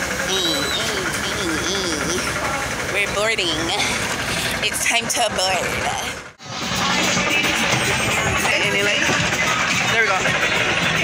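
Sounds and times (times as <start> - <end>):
engine idling: 0.0 - 11.0
people talking: 0.3 - 6.2, 6.8 - 10.5.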